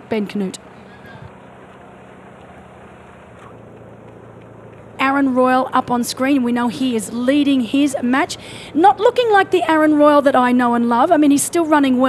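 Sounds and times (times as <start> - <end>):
low hum: 0.0 - 12.0
outdoor background noise: 0.0 - 12.0.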